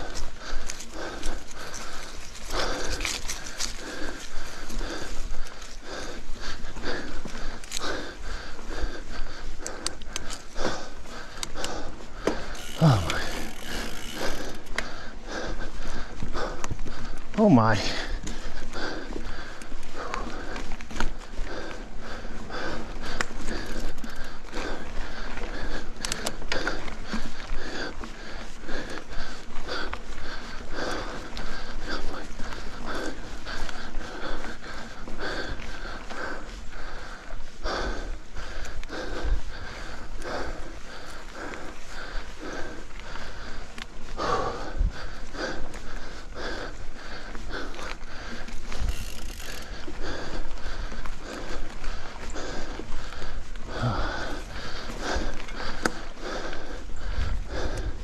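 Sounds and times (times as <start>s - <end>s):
bike clicking and rattling: 0.0s - 58.0s
person panting hard: 0.0s - 58.0s.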